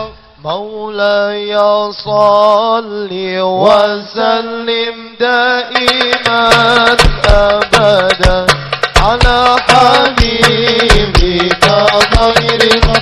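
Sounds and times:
man singing into a microphone: 0.0 - 13.0
percussion strikes: 5.7 - 13.0.

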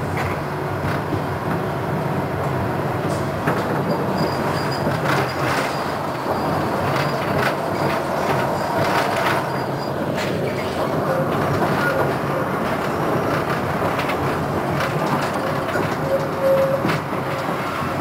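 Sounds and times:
tram rumbling on rails: 0.0 - 18.0.

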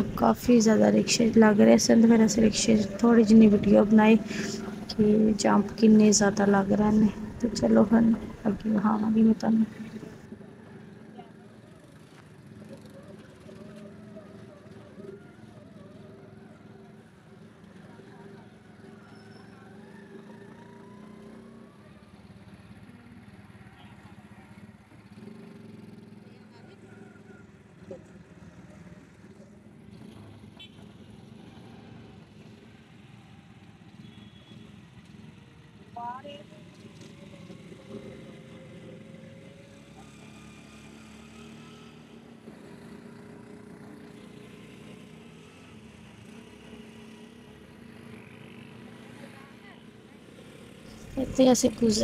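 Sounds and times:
auto-rickshaw engine droning: 0.0 - 52.0
street traffic: 0.0 - 52.0.

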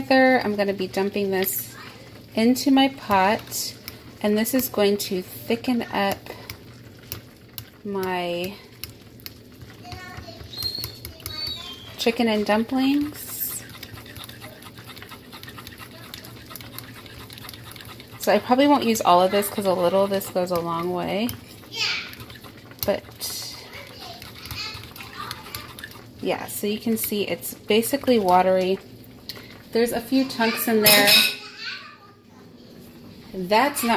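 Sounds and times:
metal spoon stirring in bowl: 2.4 - 29.5, 30.1 - 31.6
children chattering: 9.9 - 12.0, 15.8 - 16.7, 23.5 - 25.8
spoon squeaking against bowl: 10.4 - 12.0.

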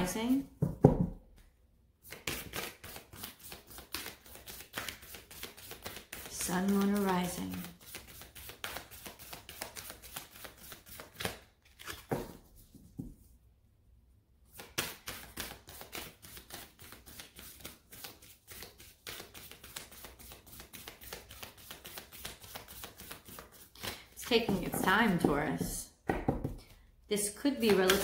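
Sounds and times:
cards being shuffled by hand: 2.0 - 13.0, 14.5 - 25.8, 27.6 - 28.0.

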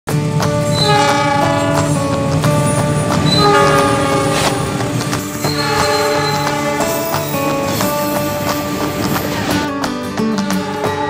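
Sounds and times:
music with regular beat: 0.4 - 11.0.

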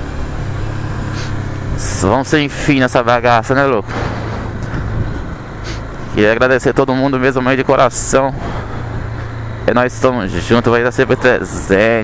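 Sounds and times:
motorcycle engine running: 0.0 - 12.0
wind noise on microphone: 4.0 - 5.4.

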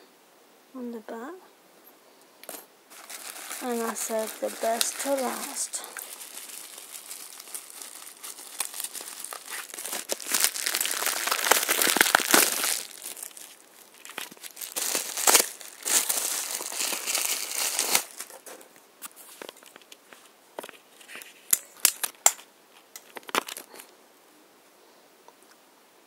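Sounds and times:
paper packing filler rustling: 2.9 - 19.9.

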